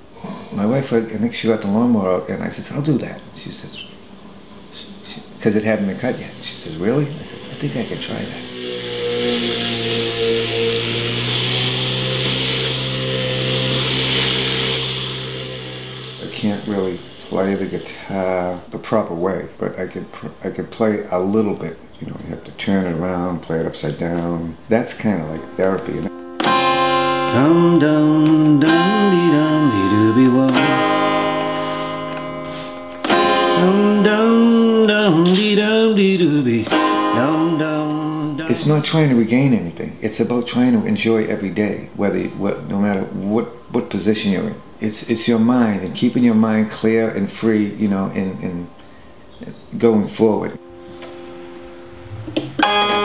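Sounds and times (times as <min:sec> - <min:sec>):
electric guitar chords strummed: 0:05.3 - 0:18.7, 0:25.0 - 0:39.0, 0:50.5 - 0:53.0
man singing or humming: 0:06.2 - 0:18.2, 0:27.3 - 0:31.0, 0:33.5 - 0:38.9.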